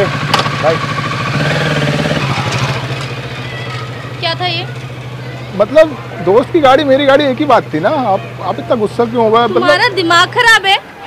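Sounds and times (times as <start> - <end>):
motorcycle engine revving: 0.0 - 10.7.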